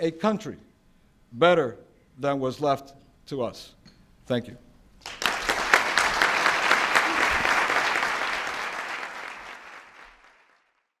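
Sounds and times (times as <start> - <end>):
audience applauding: 5.0 - 10.9.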